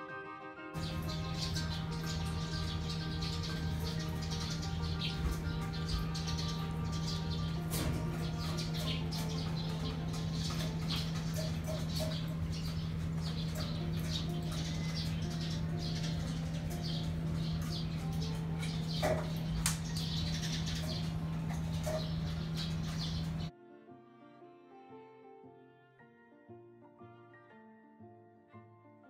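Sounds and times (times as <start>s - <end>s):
background music: 0.0s - 29.0s
birds chirping high peeps: 0.8s - 23.5s
steady low hum: 0.8s - 23.5s.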